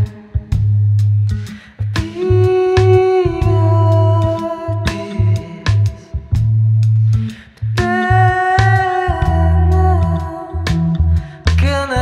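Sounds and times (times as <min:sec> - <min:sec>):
bass notes: 0:00.0 - 0:12.0.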